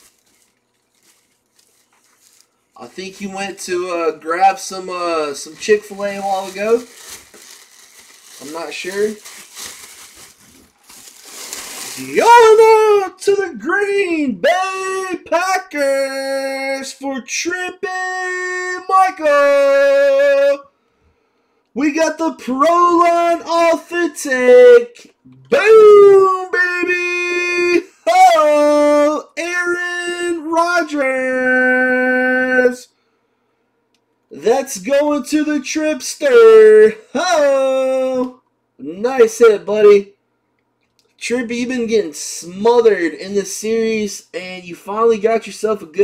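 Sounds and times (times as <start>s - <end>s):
plastic wrapping crinkling: 0.0s - 12.2s
man's voice: 2.8s - 7.0s, 8.3s - 9.3s, 11.9s - 20.7s, 21.8s - 32.9s, 34.3s - 40.1s, 41.2s - 46.0s.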